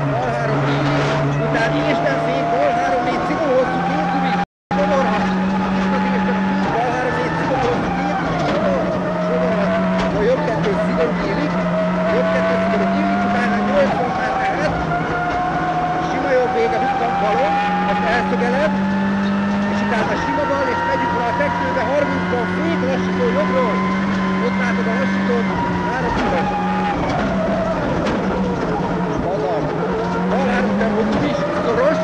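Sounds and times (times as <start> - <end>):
rally car engine running hard: 0.0 - 32.0.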